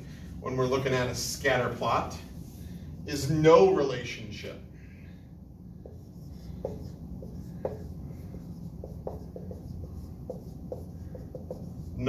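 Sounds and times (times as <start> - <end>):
low room hum: 0.0 - 12.0
marker squeaking on whiteboard: 5.8 - 12.0.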